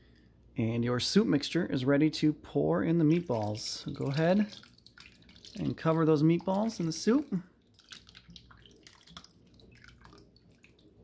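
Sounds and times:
soup dripping and splashing: 3.0s - 11.0s.

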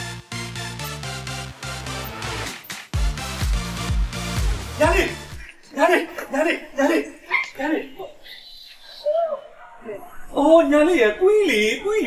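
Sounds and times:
person speaking: 4.8s - 12.0s.

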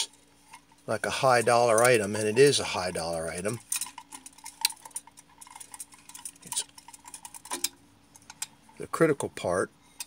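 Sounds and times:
metal case clicking and scraping: 3.6s - 8.6s.

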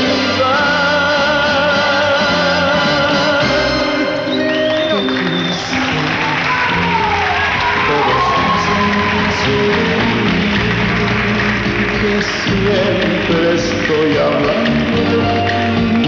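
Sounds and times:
audience applauding and cheering: 0.0s - 16.0s
instrumental ballad backing: 0.0s - 16.0s.

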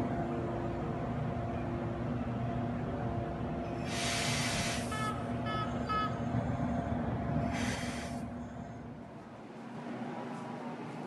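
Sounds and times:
railcar engine idling: 0.0s - 11.0s
air hissing: 3.9s - 5.0s.

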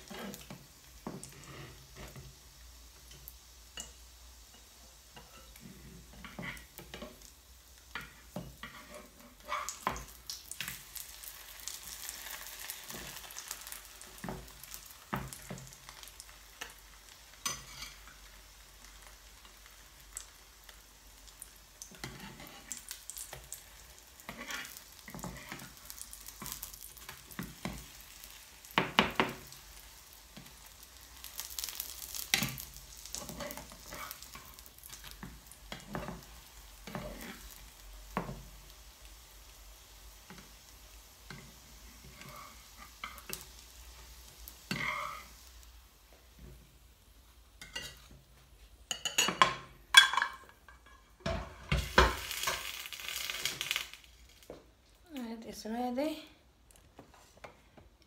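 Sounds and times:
spatula scraping a pan: 0.0s - 2.3s, 4.5s - 7.3s, 7.9s - 11.1s, 17.4s - 18.1s, 21.9s - 23.4s, 24.0s - 28.3s, 31.3s - 38.4s, 41.3s - 43.5s, 44.5s - 45.5s
pancake sizzling in a pan: 0.0s - 54.8s.

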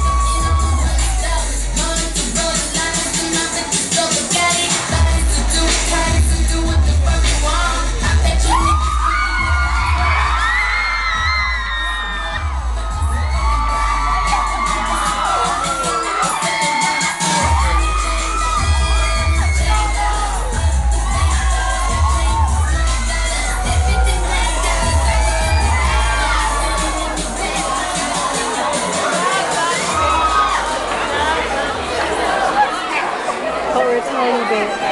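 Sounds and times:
crowd screaming and cheering: 0.0s - 34.9s
pop music with heavy bass: 0.0s - 34.9s.

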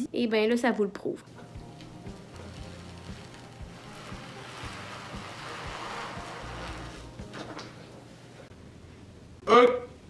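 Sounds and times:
paper backing being peeled: 1.6s - 7.8s.

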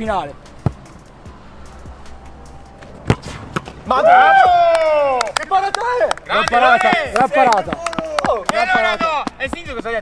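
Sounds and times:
football bouncing on turf: 0.6s - 0.9s, 6.4s - 10.0s
person shouting: 3.9s - 5.2s.

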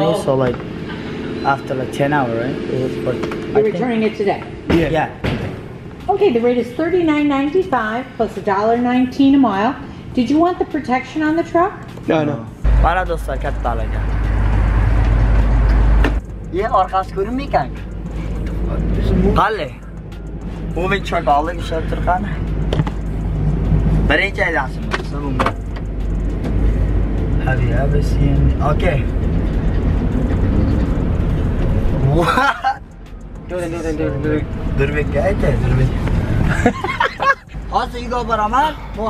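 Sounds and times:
road noise: 0.0s - 39.0s
truck engine rumbling: 0.0s - 39.0s.

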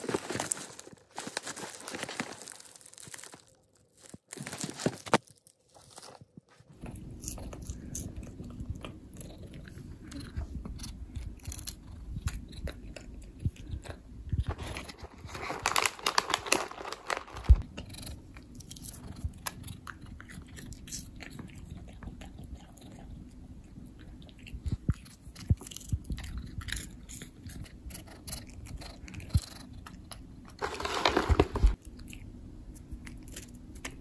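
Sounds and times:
cat crunching a treat: 0.0s - 34.0s.

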